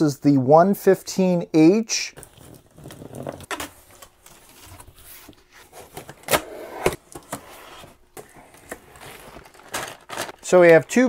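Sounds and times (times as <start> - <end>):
plastic packaging rustling: 7.1 - 11.0
packing tape being slit: 8.6 - 10.5.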